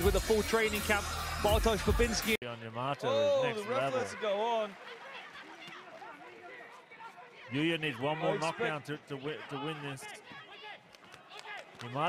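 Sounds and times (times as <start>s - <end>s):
voices calling out: 3.0s - 10.7s.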